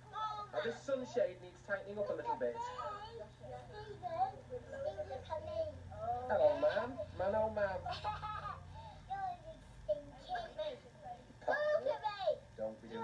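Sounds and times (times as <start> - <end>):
children chattering on television: 0.0 - 13.0
low steady hum: 0.0 - 13.0.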